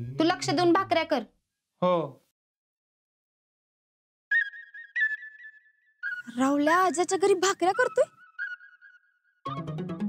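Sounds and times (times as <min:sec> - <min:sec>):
high whistled tune: 0:04.3 - 0:06.6, 0:07.6 - 0:09.7.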